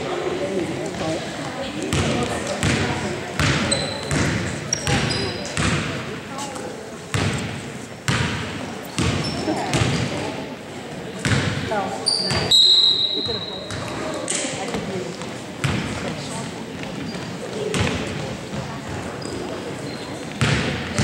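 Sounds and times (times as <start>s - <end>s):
voices in echoing gym: 0.0s - 21.0s
basketball bouncing on hardwood floor: 3.4s - 5.0s, 20.4s - 21.0s
sneaker squeaks: 3.4s - 6.5s, 9.0s - 10.2s, 12.0s - 14.4s, 16.8s - 21.0s.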